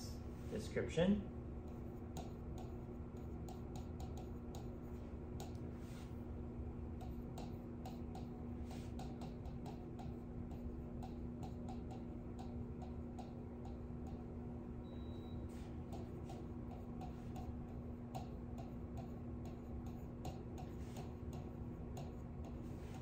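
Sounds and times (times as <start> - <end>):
low room hum: 0.0 - 23.0
pen tapping on glass screen: 2.1 - 4.8, 7.0 - 14.2, 15.9 - 22.6.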